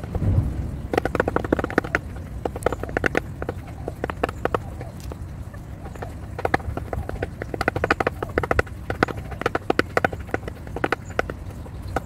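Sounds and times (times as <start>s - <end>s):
beaks tapping on plastic: 0.0s - 0.2s, 0.9s - 12.0s.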